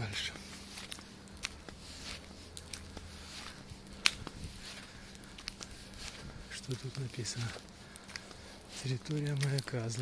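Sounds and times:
faint low hum: 0:00.0 - 0:10.0
footsteps on asphalt: 0:00.0 - 0:10.0
small clicks and rustles: 0:00.4 - 0:10.0.

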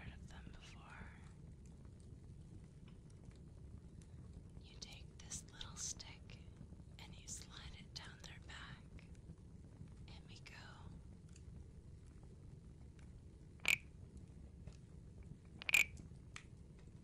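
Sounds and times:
person whispering: 0:00.0 - 0:01.3, 0:04.7 - 0:06.4, 0:07.0 - 0:08.8, 0:10.1 - 0:11.0
low background hum: 0:00.0 - 0:17.0.

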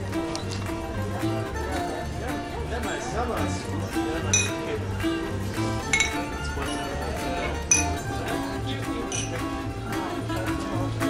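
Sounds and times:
music with plucked strings: 0:00.0 - 0:11.0
drinking glasses clinking: 0:04.2 - 0:04.8, 0:05.8 - 0:08.3, 0:09.0 - 0:09.6.

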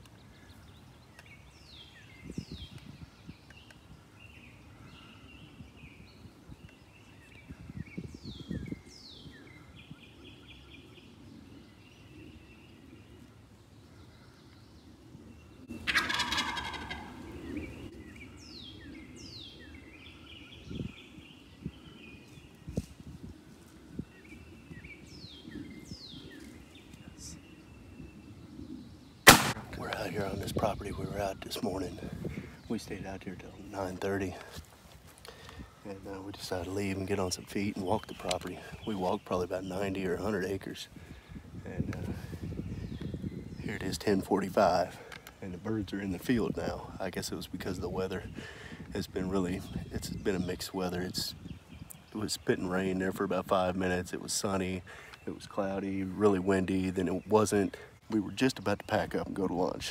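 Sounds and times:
songbirds chirping: 0:00.0 - 0:59.9
turkey gobbling: 0:15.7 - 0:17.3
shotgun shot: 0:29.3 - 0:29.7.

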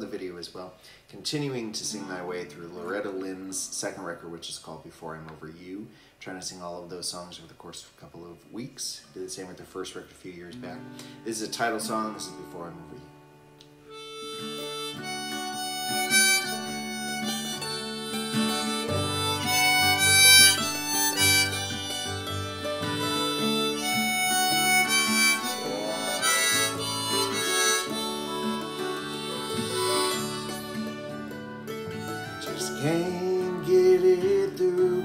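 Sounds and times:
strummed acoustic guitar: 0:10.6 - 0:35.0
harmonica melody: 0:13.8 - 0:35.0
fiddle: 0:13.9 - 0:35.0
mandolin: 0:13.9 - 0:35.0
bass: 0:14.3 - 0:35.0.

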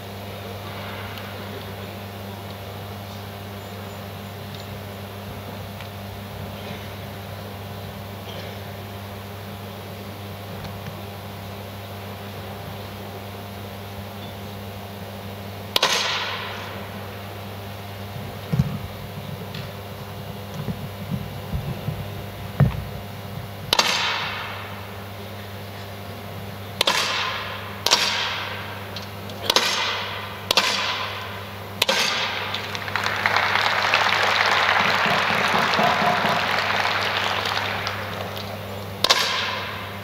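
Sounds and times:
steady low hum: 0:00.0 - 0:40.0
air rifle shots ringing: 0:15.7 - 0:17.0, 0:23.7 - 0:25.0, 0:26.8 - 0:32.8, 0:39.0 - 0:40.0
broad rush of noise: 0:15.7 - 0:40.0.

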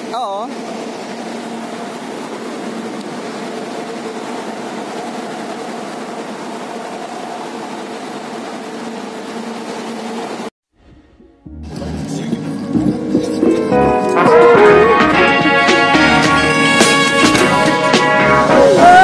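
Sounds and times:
idling bus hum and hiss: 0:00.0 - 0:10.5.

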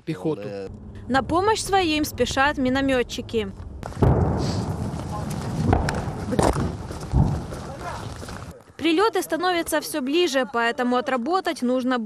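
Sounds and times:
heavy thumps: 0:00.7 - 0:08.5
rustling vegetation: 0:00.7 - 0:09.8
handling noise: 0:03.8 - 0:08.6.

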